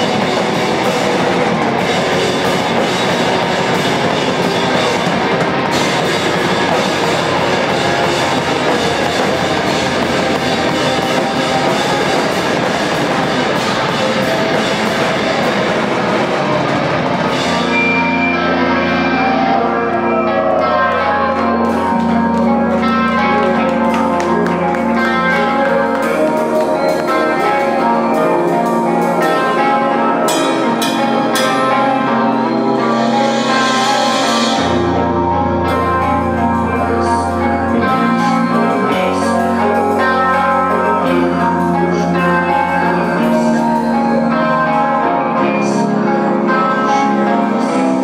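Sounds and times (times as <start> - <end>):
drum kit: 0.0 - 20.6, 21.3 - 44.3
bass guitar: 0.0 - 48.0
electric guitars: 0.0 - 48.0.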